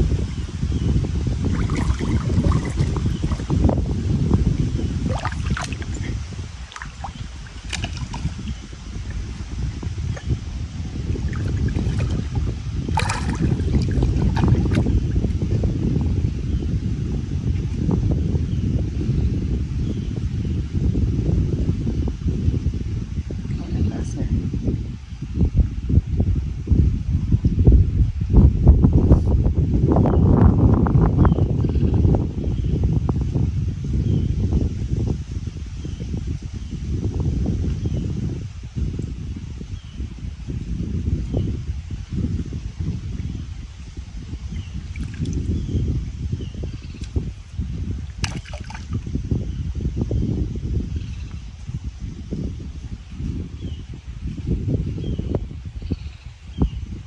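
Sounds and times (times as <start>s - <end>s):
wind rumble on microphone: 0.0s - 57.0s
river water sloshing and lapping: 1.4s - 16.2s, 42.8s - 45.8s, 46.8s - 49.1s.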